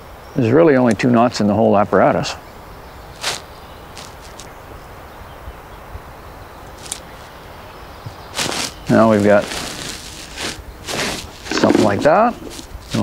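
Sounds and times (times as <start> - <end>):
low background hiss: 0.0 - 13.0
fishing line and pliers handling: 6.8 - 7.0.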